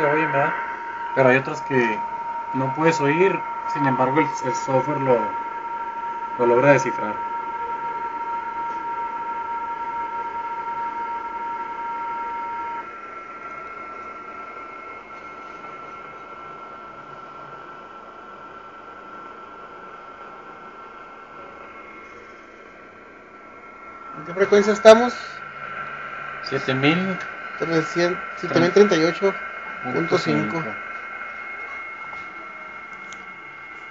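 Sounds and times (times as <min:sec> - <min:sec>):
radio static hiss: 0:00.0 - 0:08.9, 0:12.3 - 0:33.9
digital signal tones: 0:00.0 - 0:09.1.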